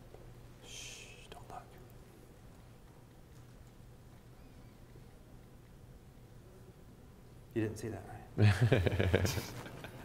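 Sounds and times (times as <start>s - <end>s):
man whispering: 0.6s - 2.1s.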